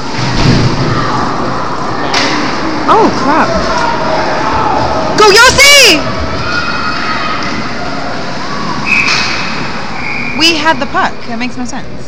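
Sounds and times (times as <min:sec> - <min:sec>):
indoor ice rink hubbub: 0:00.0 - 0:12.0
referee's whistle: 0:08.8 - 0:09.3, 0:10.0 - 0:10.5.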